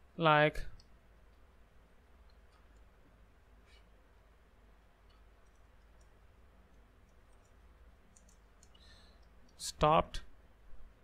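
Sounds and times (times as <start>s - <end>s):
low room hum: 0.0s - 11.0s
faint clicks: 5.0s - 9.6s.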